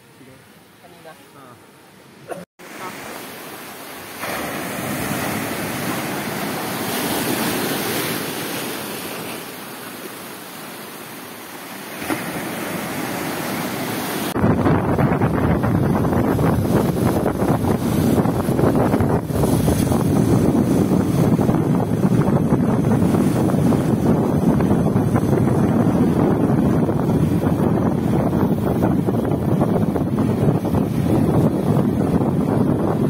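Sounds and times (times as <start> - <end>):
surf washing onto a beach: 2.6 - 33.0
wind noise on microphone: 14.0 - 33.0.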